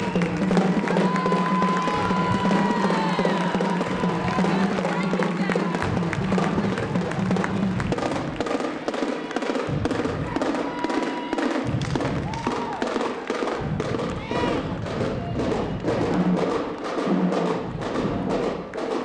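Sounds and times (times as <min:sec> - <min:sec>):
marching drumline playing: 0:00.0 - 0:19.0.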